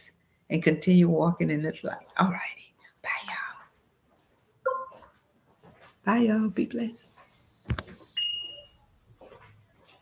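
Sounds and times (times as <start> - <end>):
high-pitched electronic beep: 7.4 - 8.8.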